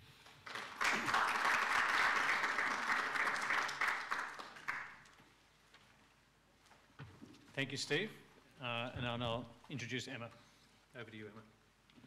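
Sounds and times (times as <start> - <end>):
audience applauding: 0.2 - 5.1.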